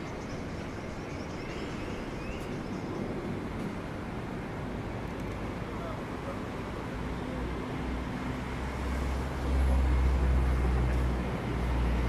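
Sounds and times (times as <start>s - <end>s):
city traffic rumbling: 0.0s - 12.0s
vehicle passing: 5.9s - 12.0s.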